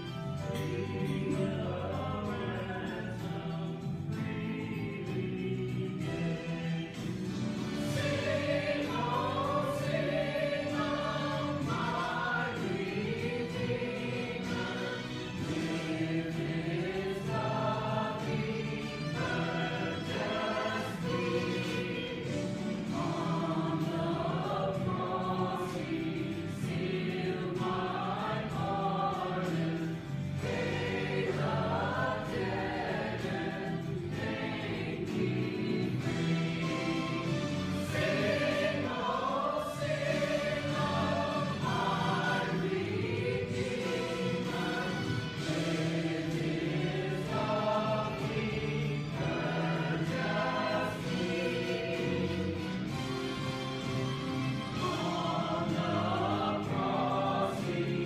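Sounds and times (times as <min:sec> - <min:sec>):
choir singing: 0:00.0 - 0:58.0.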